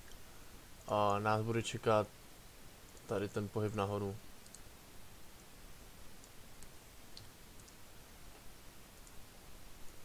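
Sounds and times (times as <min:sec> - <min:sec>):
faint computer mouse clicks: 0:04.4 - 0:04.6, 0:06.2 - 0:09.2.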